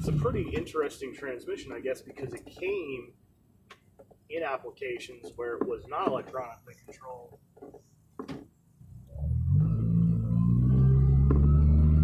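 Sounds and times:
car engine drone: 0.0 - 0.8, 8.8 - 12.0.

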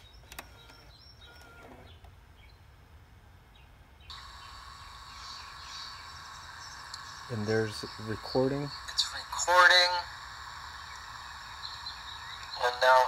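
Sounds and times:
high level whining tones: 4.1 - 12.8
tape hiss from speaker: 4.1 - 13.0.

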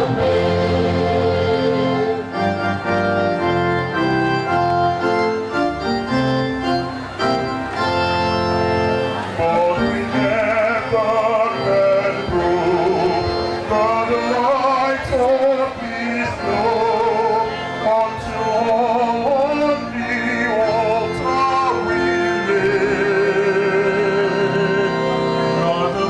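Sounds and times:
church choir music: 0.0 - 26.0
organ holding chords: 0.0 - 26.0.

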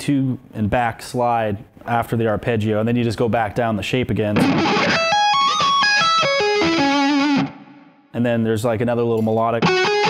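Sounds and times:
distorted electric guitar: 4.4 - 7.9, 9.6 - 10.0.

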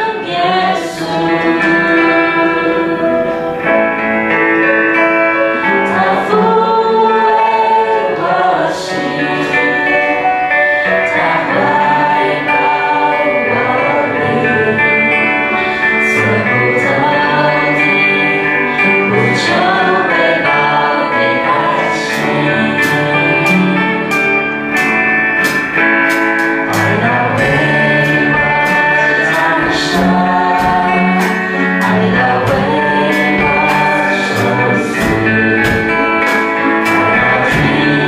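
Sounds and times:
band accompaniment: 0.0 - 38.0
group singing worship song: 0.0 - 38.0
sharp percussion hits: 22.1 - 38.0.

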